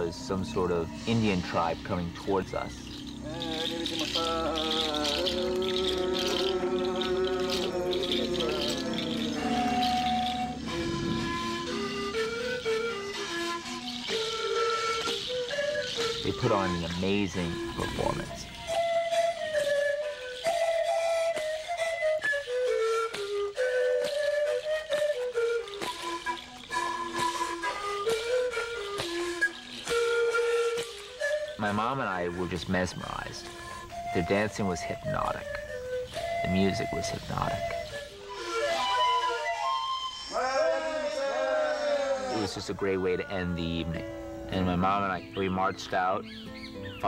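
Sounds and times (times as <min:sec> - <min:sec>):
flutes holding long notes: 0:00.0 - 0:46.4.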